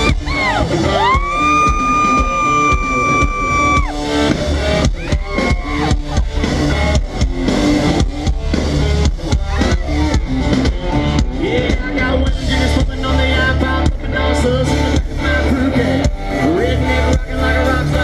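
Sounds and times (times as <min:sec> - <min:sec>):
drum beat: 0:00.0 - 0:14.2
country-rock band playing: 0:00.0 - 0:18.0
electric guitar: 0:00.0 - 0:18.0.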